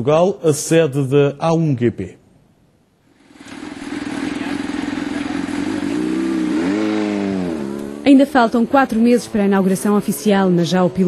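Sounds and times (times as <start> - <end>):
motorcycle engine at high revs: 3.2 - 11.0.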